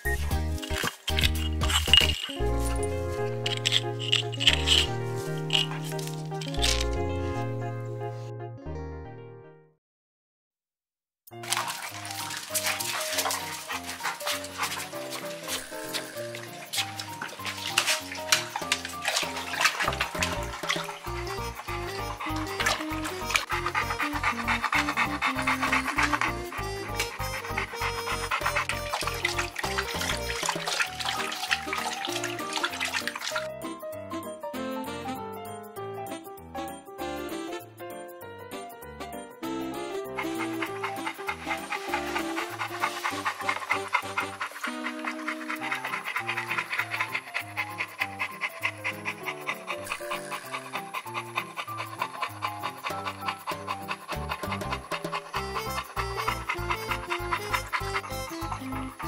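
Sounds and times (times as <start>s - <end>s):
background music: 0.0s - 9.8s, 11.4s - 59.0s
dog panting: 11.5s - 33.5s, 39.8s - 59.0s.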